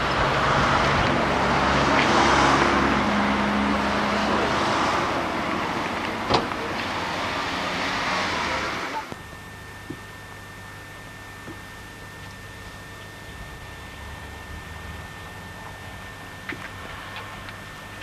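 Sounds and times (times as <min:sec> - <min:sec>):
car engine running: 0:00.0 - 0:18.0
road noise: 0:00.0 - 0:18.0
faint high whine: 0:02.8 - 0:18.0.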